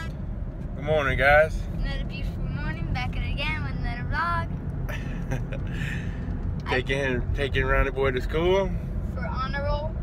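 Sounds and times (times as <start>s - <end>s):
car driving rumble: 0.0s - 10.0s.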